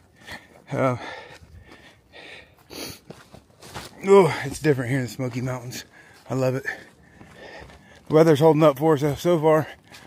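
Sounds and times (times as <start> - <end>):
heavy breathing: 0.0 - 4.6, 5.7 - 8.1, 9.6 - 10.0
footsteps on a trail: 0.0 - 10.0.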